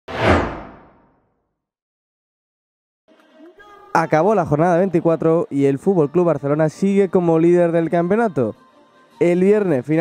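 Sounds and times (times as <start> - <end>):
whoosh swish: 0.1 - 1.1.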